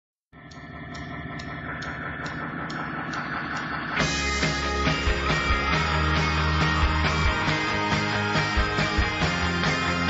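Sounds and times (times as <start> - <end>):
soft ticking keeping time: 0.3 - 5.2
sustained drone of held notes: 0.4 - 8.3.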